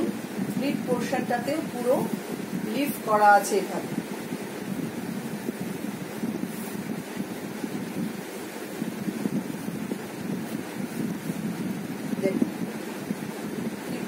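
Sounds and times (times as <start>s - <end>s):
silk fabric rustling and swishing: 4.3s - 11.9s.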